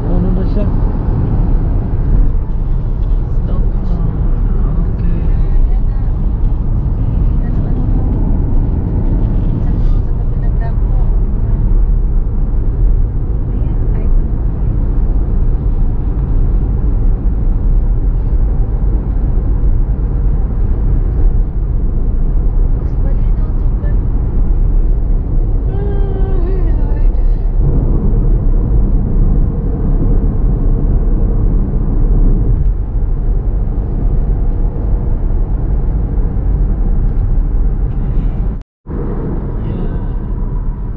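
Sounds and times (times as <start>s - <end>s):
car engine: 0.0s - 40.9s
tyres rumbling on road: 0.0s - 40.9s.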